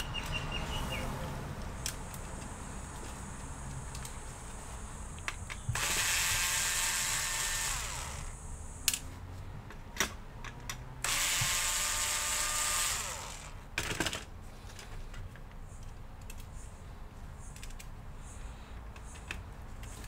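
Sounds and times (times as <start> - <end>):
cordless screwdriver motor whine: 5.7 - 8.4, 11.0 - 13.6.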